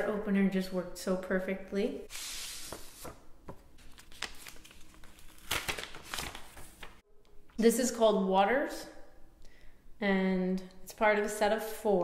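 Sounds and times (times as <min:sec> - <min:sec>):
paper envelope rustling: 0:02.1 - 0:07.0.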